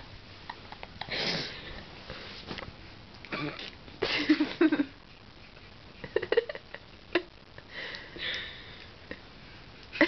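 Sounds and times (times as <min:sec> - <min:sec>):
woman breathing breathily: 0:01.0 - 0:02.4, 0:07.6 - 0:09.7
woman laughing: 0:04.0 - 0:05.0, 0:06.0 - 0:07.3.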